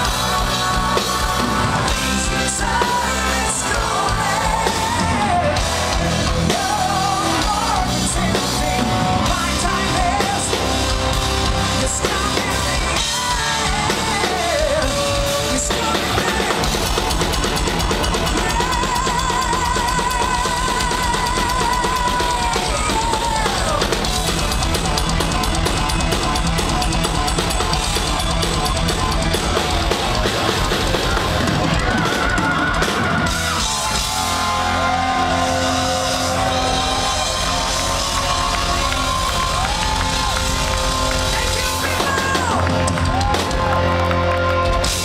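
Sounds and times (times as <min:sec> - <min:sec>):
live metal band: 0:00.0 - 0:45.0.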